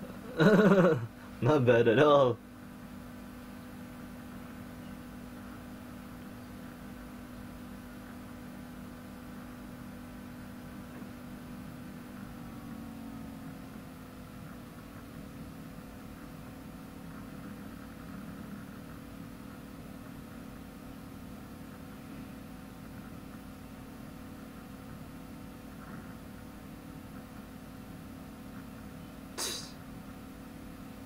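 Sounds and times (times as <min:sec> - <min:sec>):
low hum: 0:00.0 - 0:31.0
faint hiss: 0:29.4 - 0:29.8.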